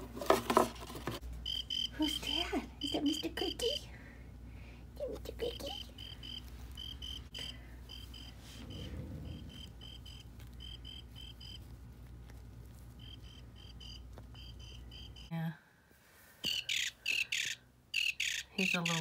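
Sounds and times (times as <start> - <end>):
electronic cricket chirps: 1.4 - 3.2, 5.8 - 11.6, 13.0 - 15.3.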